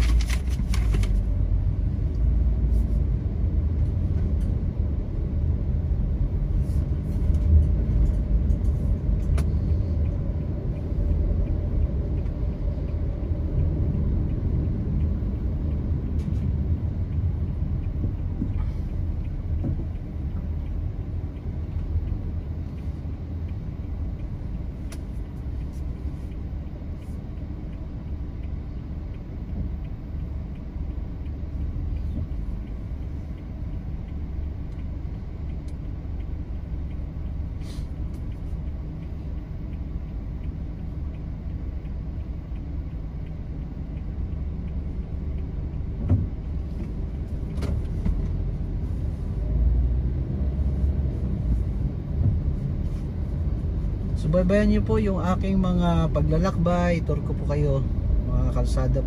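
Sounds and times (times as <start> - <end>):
car rumbling in traffic: 0.0 - 59.0.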